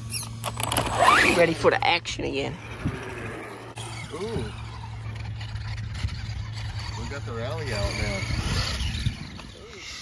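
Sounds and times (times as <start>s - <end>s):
rc truck electric motor whining: 0.0s - 10.0s.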